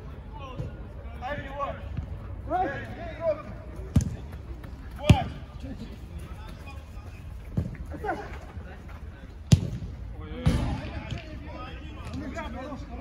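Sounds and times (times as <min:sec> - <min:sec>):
football being kicked: 0:03.9 - 0:04.3, 0:09.5 - 0:09.9.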